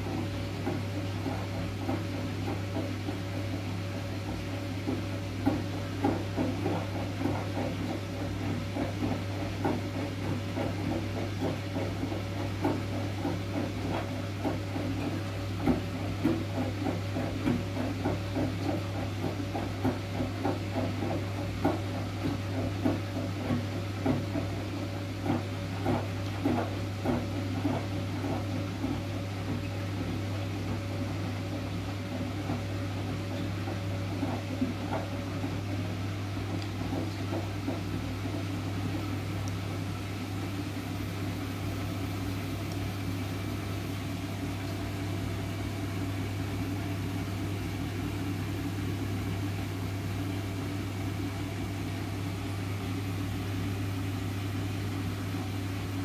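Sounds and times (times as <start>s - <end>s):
washing machine motor hum: 0.0s - 56.0s
knocking in washing machine drum: 4.2s - 39.0s.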